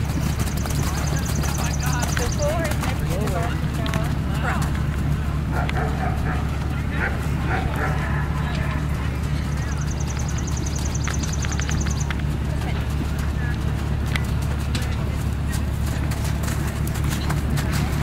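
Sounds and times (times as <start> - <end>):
faint distant voices: 0.0 - 18.0
rapid high clicking trill: 9.6 - 12.2.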